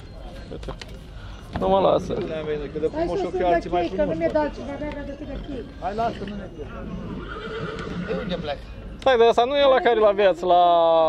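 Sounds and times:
horse whinnying: 0:06.7 - 0:08.7.

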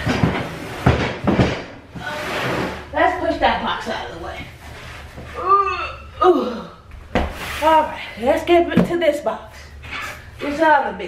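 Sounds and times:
cardboard box scraping on floor: 0:02.0 - 0:03.2, 0:07.2 - 0:07.9.

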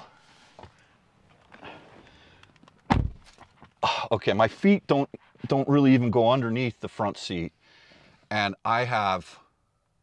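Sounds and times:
dull thump against seat: 0:02.9 - 0:03.3.

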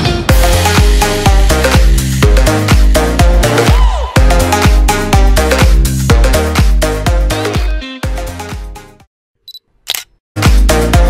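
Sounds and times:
electronic dance music: 0:00.0 - 0:08.8
camera shutter click: 0:09.9 - 0:10.2.

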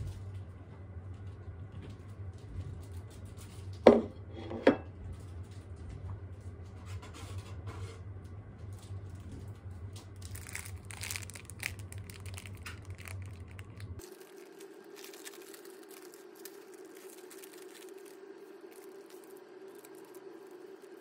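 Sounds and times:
steady low hum: 0:00.0 - 0:21.0
plastic packaging crinkling: 0:10.0 - 0:21.0.

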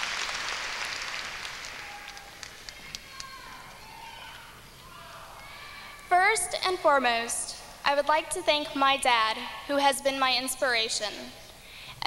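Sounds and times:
faint crowd noise: 0:00.0 - 0:12.0.

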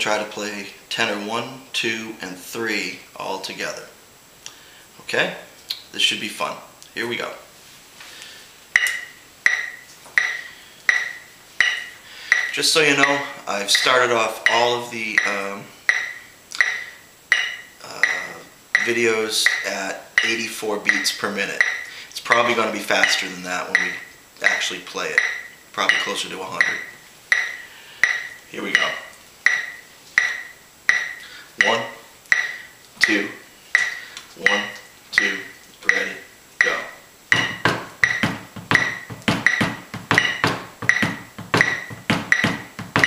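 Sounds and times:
electronic metronome beeping: 0:08.7 - 0:43.0.

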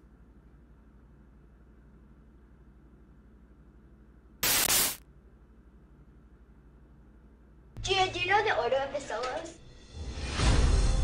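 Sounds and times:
faint low hum: 0:00.0 - 0:09.0
tv static burst: 0:04.4 - 0:05.0.

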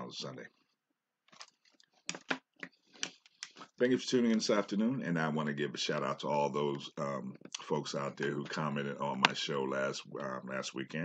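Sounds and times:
man speaking: 0:00.0 - 0:00.6, 0:03.6 - 0:11.0.

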